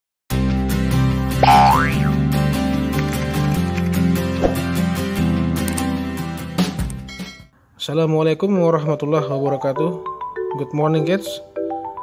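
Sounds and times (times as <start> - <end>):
cartoon sound effect sweeping up: 1.4 - 2.1.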